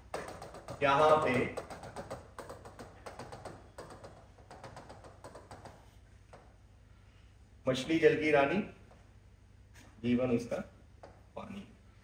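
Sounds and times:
stylus tapping on screen: 0.0s - 6.6s.

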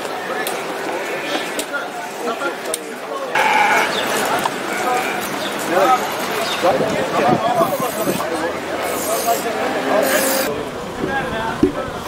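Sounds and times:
chatter of voices: 0.0s - 12.0s
sheep bleating: 3.4s - 5.3s.

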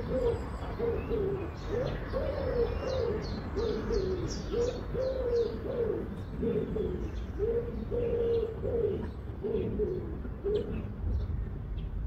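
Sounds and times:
dove cooing: 0.0s - 11.0s
small birds chirping: 0.0s - 12.0s.

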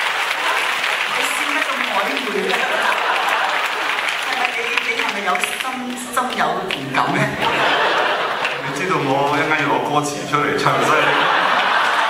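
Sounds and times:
audience applauding: 0.0s - 12.0s
voices: 0.4s - 12.0s.

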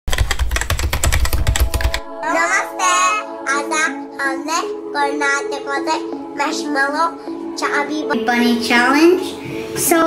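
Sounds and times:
fast sharp clicks: 0.1s - 2.0s
held musical chords: 1.0s - 10.0s
child singing: 2.1s - 10.0s.

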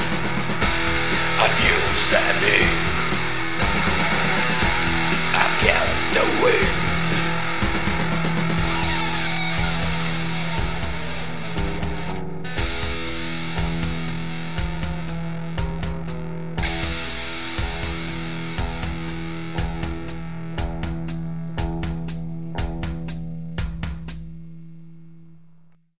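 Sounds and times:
rock music with distorted guitar: 0.0s - 25.0s.

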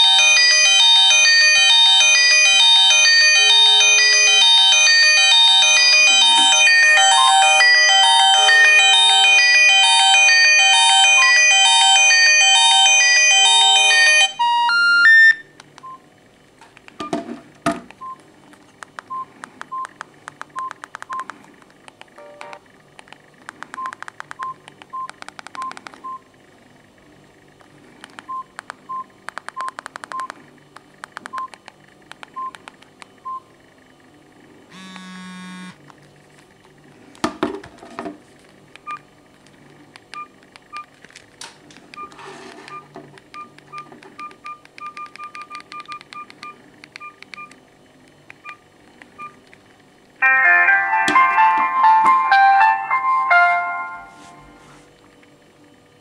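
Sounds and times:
electronic phone ringtone: 0.0s - 15.5s, 22.2s - 22.6s, 34.7s - 35.8s, 50.2s - 54.6s
keypad beeps: 13.9s - 16.0s, 18.0s - 18.2s, 18.9s - 21.3s, 22.2s - 22.6s, 23.7s - 26.3s, 28.2s - 30.4s, 31.2s - 31.6s, 32.2s - 33.5s, 38.8s - 39.1s, 40.1s - 40.9s, 41.9s - 47.6s, 48.3s - 49.4s.

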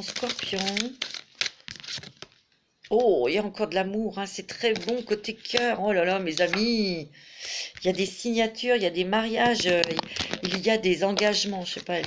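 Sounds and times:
cards being shuffled: 0.0s - 3.0s, 4.6s - 6.8s, 9.4s - 12.0s.

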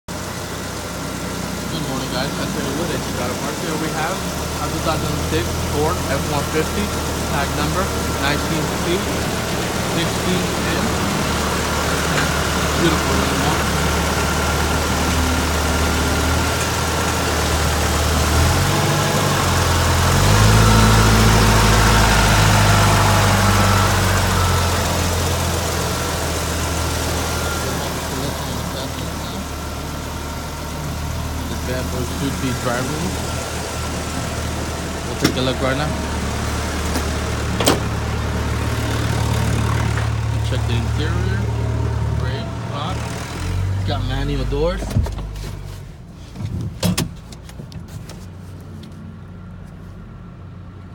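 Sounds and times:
pickup engine idling: 0.1s - 50.0s.

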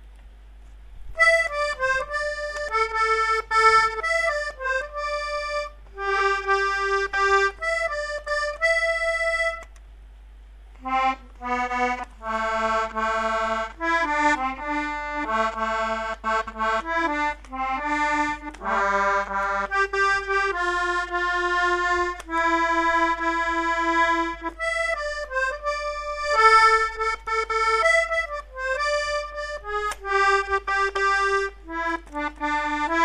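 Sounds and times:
accordion melody: 1.0s - 9.8s, 10.7s - 33.0s.

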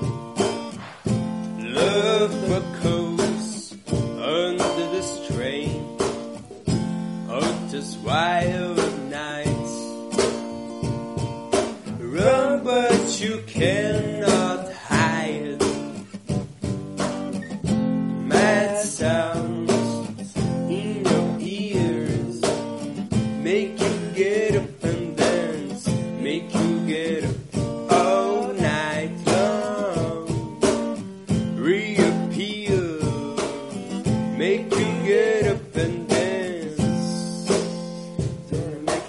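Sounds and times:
strummed acoustic guitar: 0.0s - 39.0s
person singing without words: 1.5s - 6.0s, 7.3s - 10.1s, 11.8s - 16.2s, 18.2s - 30.8s, 31.5s - 39.0s.

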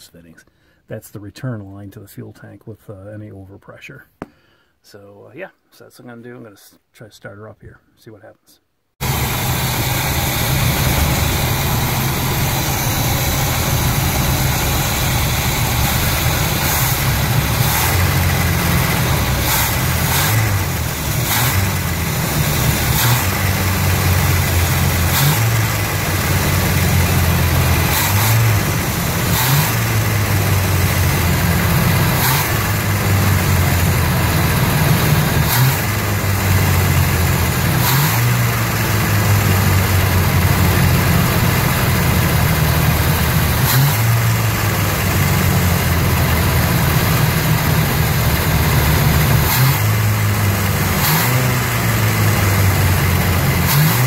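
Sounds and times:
engine idling unevenly: 9.0s - 53.7s.

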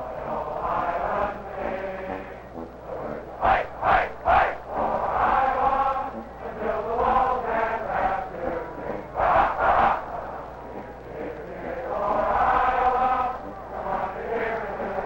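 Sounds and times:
crowd chanting in unison: 0.0s - 15.0s
loud shouted syllables: 3.4s - 15.0s.

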